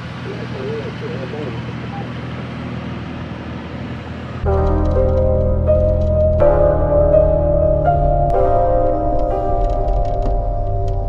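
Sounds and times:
vehicle engines idling: 0:00.0 - 0:11.0.

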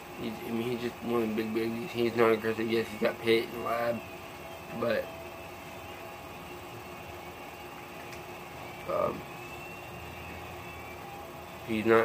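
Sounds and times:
air conditioner humming: 0:00.0 - 0:12.0.

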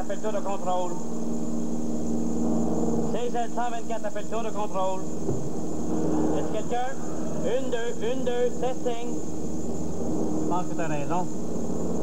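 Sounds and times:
airplane cabin droning hum: 0:00.0 - 0:12.0.

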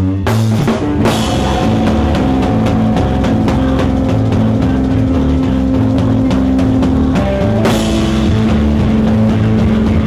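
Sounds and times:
drum hits: 0:00.5 - 0:10.0
amplified guitars droning chord: 0:00.6 - 0:10.0.

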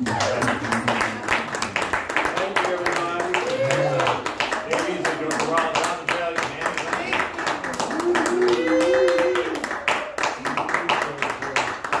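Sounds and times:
audience clapping: 0:00.0 - 0:12.0
person cheering: 0:03.1 - 0:04.3, 0:07.7 - 0:09.8.

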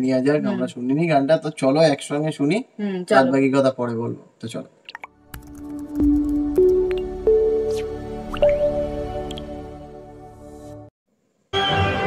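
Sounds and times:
synth notes stepping upward: 0:05.3 - 0:09.7.

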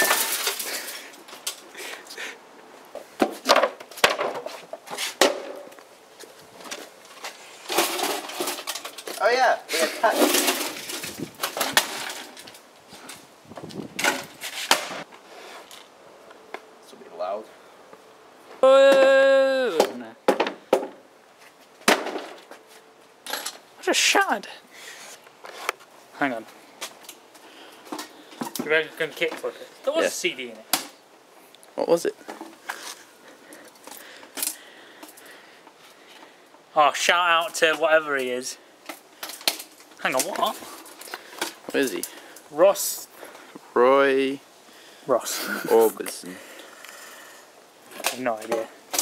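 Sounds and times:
hard blows smashing wood and plastic: 0:00.0 - 0:01.6, 0:07.6 - 0:09.2, 0:10.0 - 0:12.6, 0:21.8 - 0:22.5
man calling out: 0:18.6 - 0:20.2.

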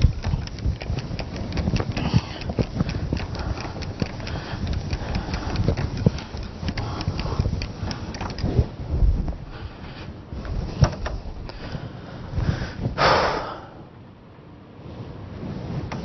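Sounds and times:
small knocks: 0:10.7 - 0:11.6.

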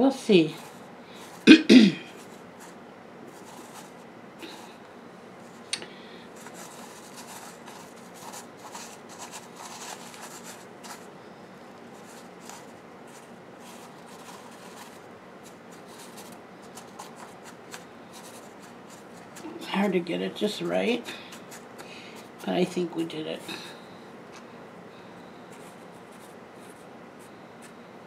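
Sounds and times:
fingers rustling wet perlite: 0:06.4 - 0:11.1, 0:11.7 - 0:22.7.

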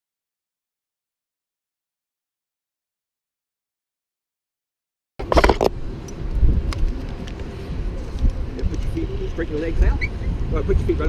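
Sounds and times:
wind buffeting microphone: 0:05.2 - 0:11.0.

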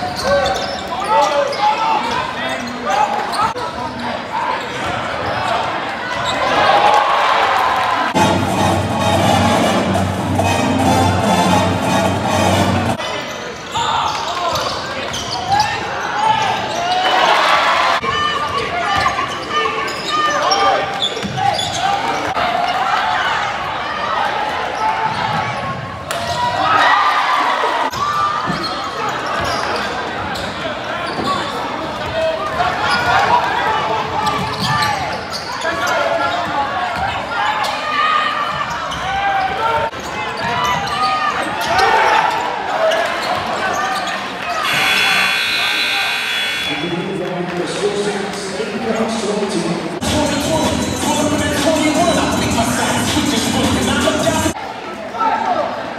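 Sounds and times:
crowd voices and shouts: 0:00.0 - 0:55.9.

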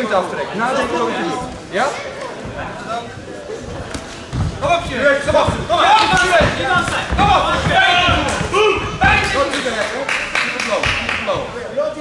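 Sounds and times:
dull thuds: 0:03.8 - 0:09.5
people shouting in a hall: 0:05.7 - 0:09.5.

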